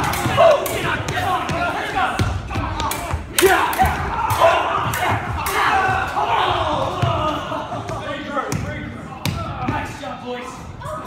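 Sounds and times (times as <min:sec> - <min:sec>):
young men shouting: 0:00.0 - 0:09.9.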